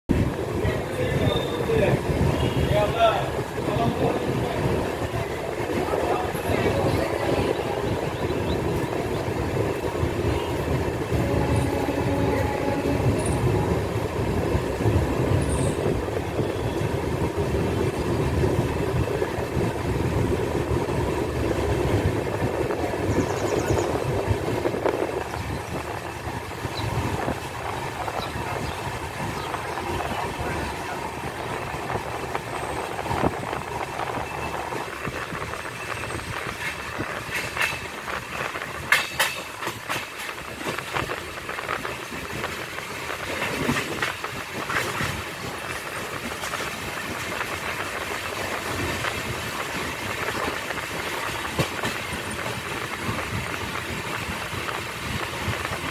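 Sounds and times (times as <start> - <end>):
train rumbling: 0.0 - 55.9.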